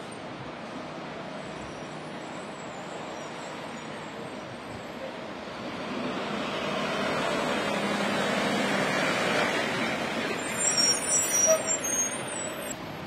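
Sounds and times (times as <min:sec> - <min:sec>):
road traffic passing: 0:00.0 - 0:13.0
heavy vehicle tyre noise: 0:04.0 - 0:13.0
high wavering squeal: 0:10.3 - 0:12.8.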